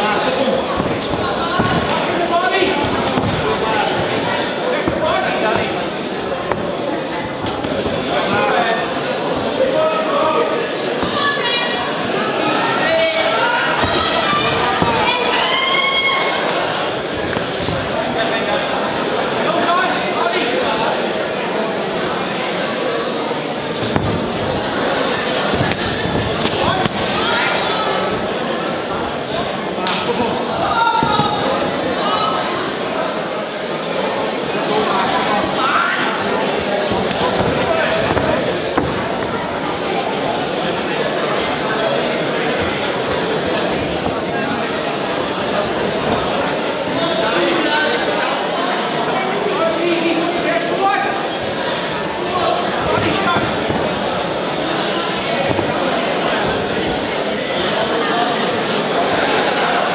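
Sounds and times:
footwork on ring canvas: 0.0 - 19.2, 23.5 - 29.5, 30.1 - 32.4, 34.8 - 47.0, 50.6 - 58.0
crowd shouting: 0.0 - 21.0, 22.0 - 33.0
boxing gloves slapping: 0.6 - 8.2, 13.8 - 15.1, 17.1 - 18.0, 23.8 - 24.6, 25.4 - 27.3
spectators shouting: 9.6 - 18.6, 24.0 - 28.4, 30.3 - 32.6.

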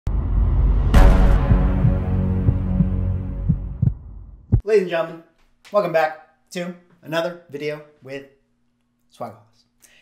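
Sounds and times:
low droning chord: 0.6 - 3.8
dull low thuds: 1.0 - 4.6.

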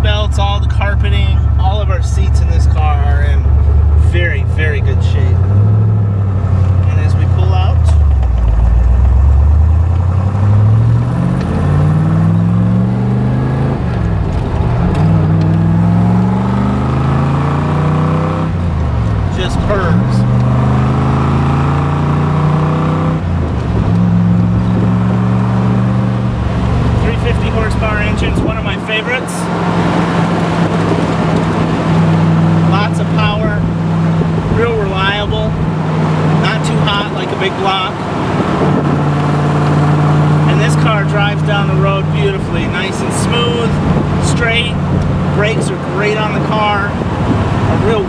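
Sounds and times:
car engine revving and cruising: 0.0 - 48.0.

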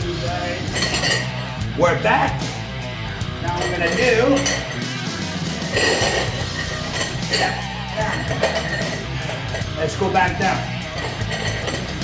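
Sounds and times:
background music: 0.0 - 12.0
metal dumbbells clinking: 0.7 - 1.4, 3.5 - 4.8, 5.7 - 9.7, 10.8 - 12.0.

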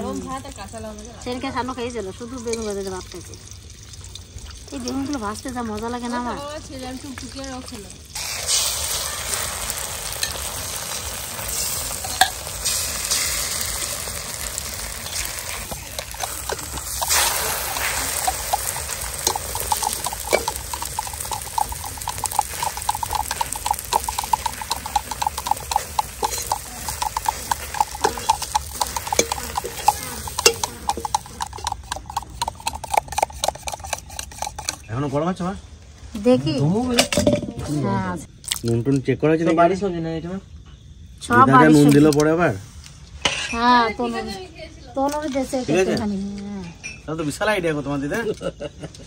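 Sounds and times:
egg sizzling in oil: 0.0 - 34.9.

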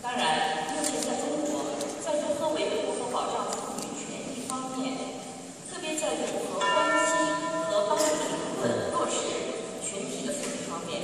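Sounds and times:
murmur of voices in a hall: 0.0 - 11.0.

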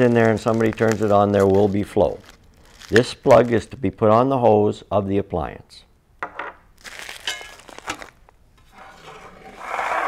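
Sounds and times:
plastic bag crinkling: 0.0 - 3.8, 6.8 - 8.4
metal box scraping across table: 8.6 - 10.0.

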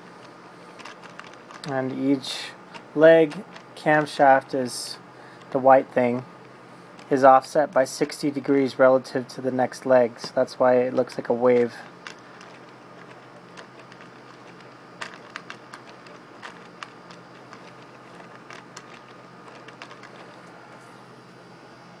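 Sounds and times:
faint steady hum: 0.0 - 22.0
plastic robot parts clicking: 10.2 - 20.5.

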